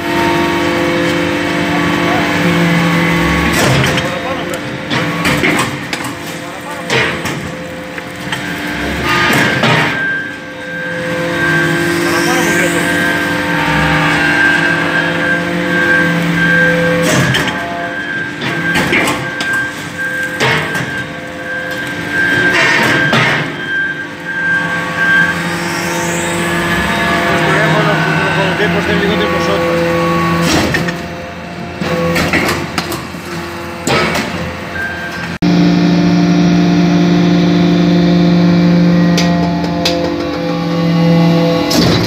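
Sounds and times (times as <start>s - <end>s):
hydraulic hum: 0.0s - 42.0s.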